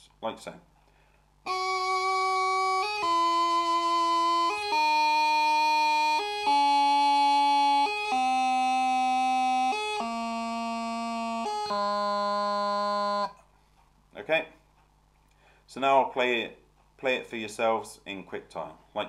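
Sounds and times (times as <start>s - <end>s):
practice chanter playing scale: 1.5s - 13.4s.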